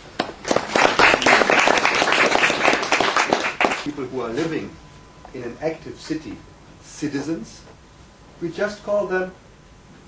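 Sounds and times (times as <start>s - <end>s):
audience applauding: 0.2s - 3.9s.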